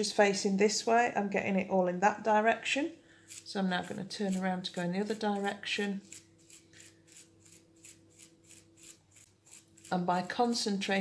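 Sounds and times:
thumb rasping toothbrush bristles: 3.3s - 10.7s.

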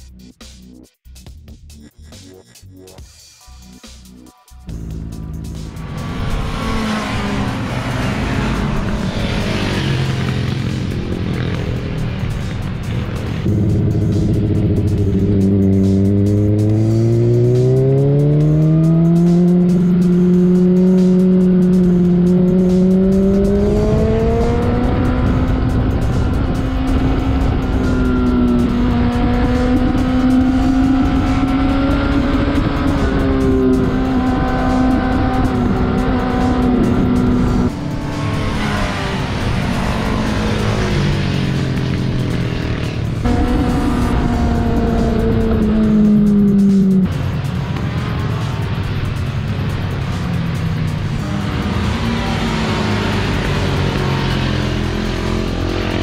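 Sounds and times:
motorcycle engine revving at speed: 4.8s - 56.0s.

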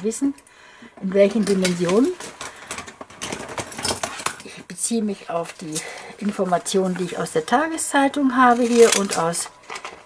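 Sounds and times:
paper rustling and scraping: 8.4s - 10.0s.

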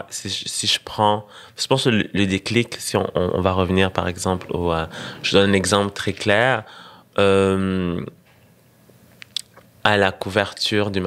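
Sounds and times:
mouth clicks: 9.2s - 9.7s.

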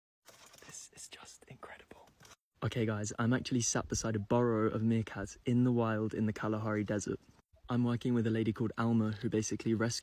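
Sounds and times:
man whispering: 0.6s - 2.2s.

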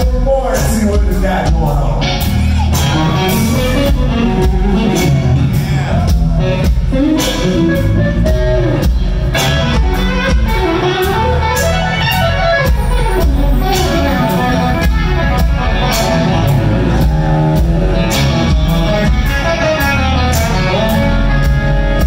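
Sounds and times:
bass guitar: 0.0s - 22.0s
electric guitar solo: 2.0s - 22.0s
drum beat: 2.7s - 22.0s.

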